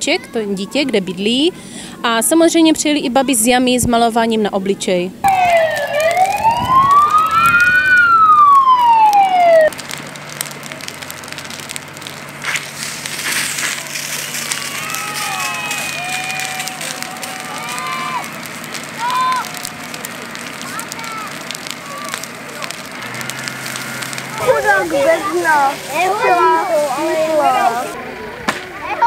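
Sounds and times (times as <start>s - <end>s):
outdoor noise: 0.0s - 29.0s
emergency siren wailing: 5.2s - 9.8s, 14.4s - 28.2s.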